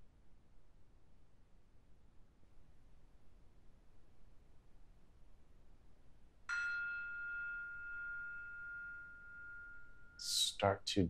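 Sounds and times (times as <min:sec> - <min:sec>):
bell-like chime: 0:06.5 - 0:10.4.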